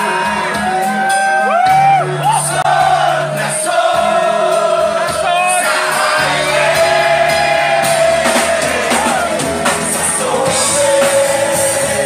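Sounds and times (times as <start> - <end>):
rock song with male vocal: 0.0 - 12.0.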